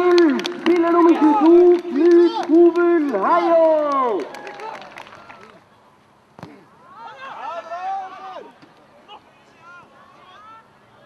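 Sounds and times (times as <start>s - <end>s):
voices shouting and calling: 0.8s - 11.0s.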